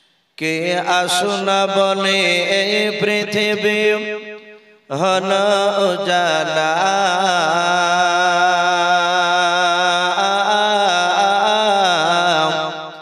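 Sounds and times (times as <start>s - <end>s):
man singing through a microphone: 0.4s - 13.0s.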